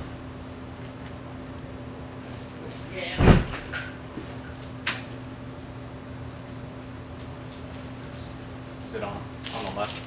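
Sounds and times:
dull thump: 3.2s - 3.7s.

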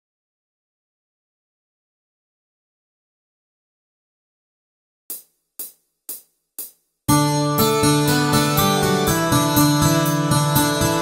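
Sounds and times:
hi-hat ticks: 5.1s - 7.0s.

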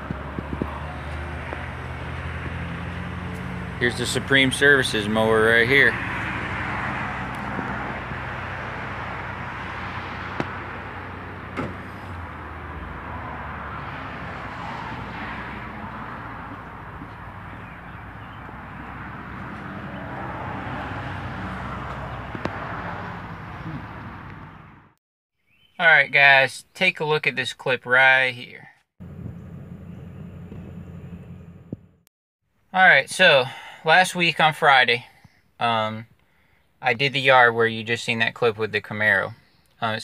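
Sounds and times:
outdoor background noise: 29.0s - 33.9s.

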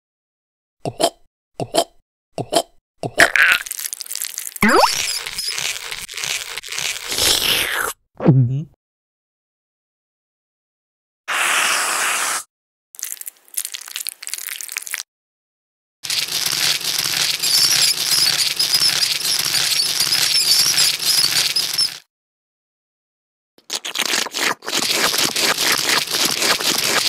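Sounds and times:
sharp crackling and crunching: 3.4s - 7.5s, 16.1s - 22.0s, 23.8s - 27.0s.

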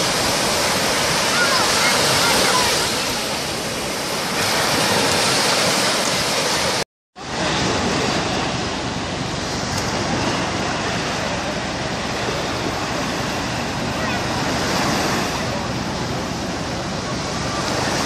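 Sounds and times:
sea surf breaking on beach: 0.0s - 18.0s.

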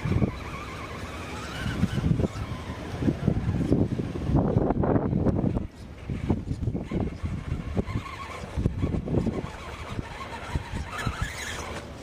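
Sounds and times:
electric motor and gears whining: 0.0s - 12.0s
wind rumble on microphone: 0.0s - 12.0s.

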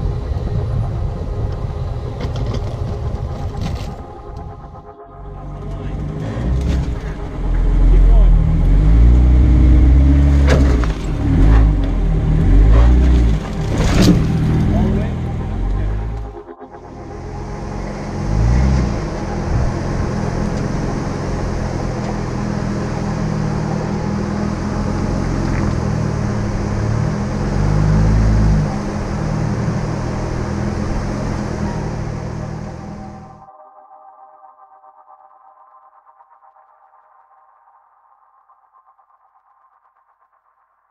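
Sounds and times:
engine rumble: 0.0s - 33.5s
scrapes and knocks on vehicle: 12.7s - 14.7s.

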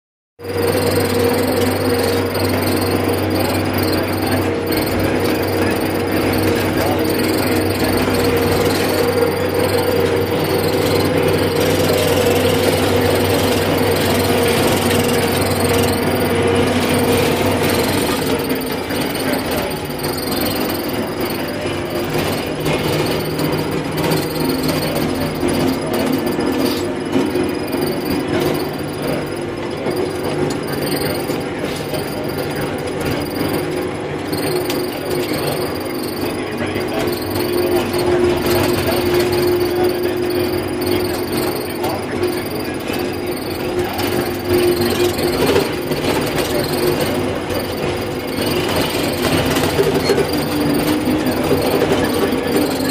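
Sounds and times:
steady whine: 0.4s - 52.9s
tractor engine running: 0.4s - 52.9s.

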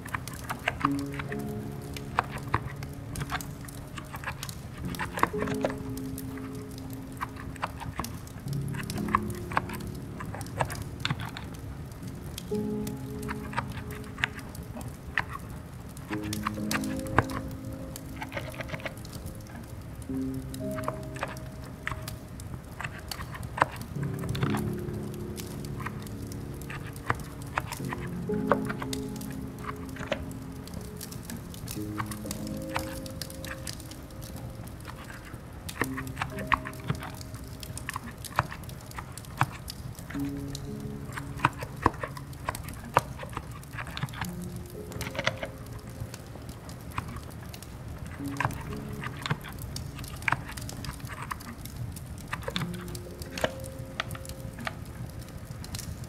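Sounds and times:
fireplace crackling: 0.0s - 56.0s
quiet keyboard typing: 0.0s - 56.0s
slow soft background music: 0.0s - 56.0s.

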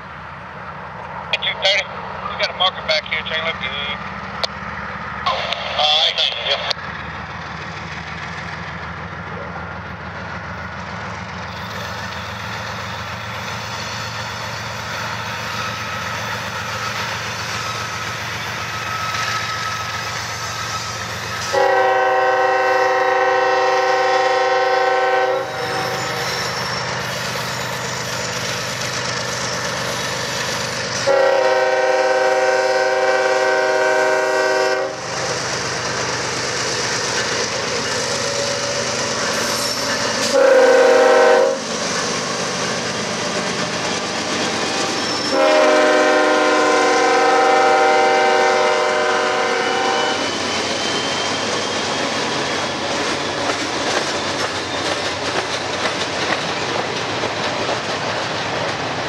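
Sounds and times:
diesel locomotive engines rumbling: 0.0s - 59.0s
locomotive air horn blasts: 21.4s - 26.2s, 31.0s - 35.0s, 40.2s - 41.6s, 45.3s - 50.3s.

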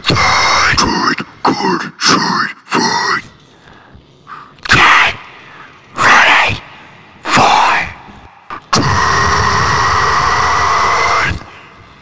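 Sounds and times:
harsh metal scream: 8.7s - 11.6s.

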